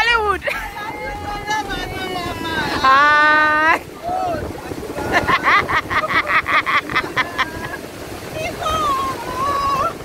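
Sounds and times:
surf washing in shallows: 0.0s - 10.0s
woman laughing: 0.3s - 3.1s, 5.0s - 7.9s
wind on microphone: 0.4s - 10.0s.

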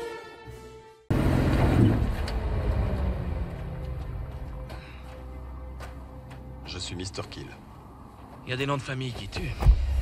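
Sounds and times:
film score music: 0.0s - 10.0s
car engine rumbling: 1.1s - 10.0s.

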